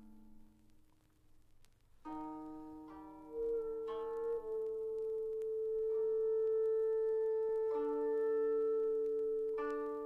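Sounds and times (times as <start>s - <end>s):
long held musical tone: 2.1s - 10.0s.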